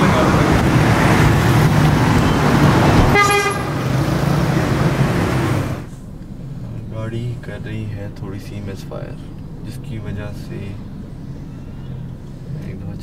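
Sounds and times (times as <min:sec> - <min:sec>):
road traffic noise: 0:00.0 - 0:13.0
short car horn toot: 0:03.1 - 0:03.8.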